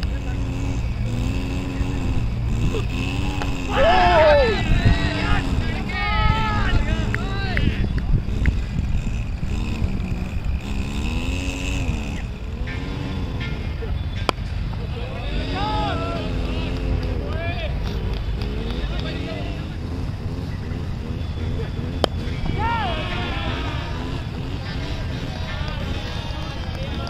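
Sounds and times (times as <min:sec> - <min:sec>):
wind rumble on microphone: 0:00.0 - 0:12.5
players calling out: 0:00.0 - 0:27.0.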